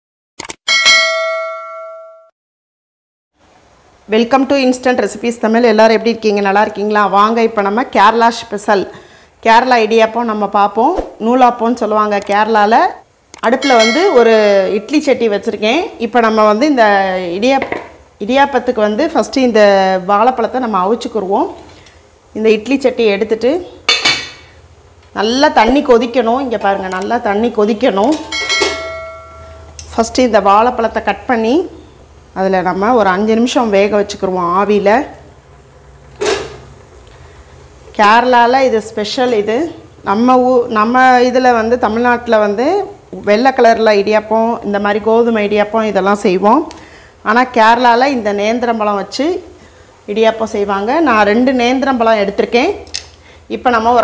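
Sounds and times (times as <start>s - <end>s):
bright bell chime: 0.7s - 2.3s, 13.6s - 14.2s, 28.3s - 29.7s
metal plate clinking and ringing: 13.6s - 14.3s, 28.2s - 29.8s.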